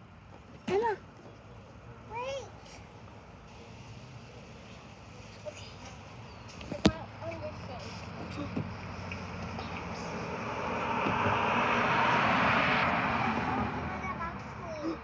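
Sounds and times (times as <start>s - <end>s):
car on street: 0.0s - 15.0s.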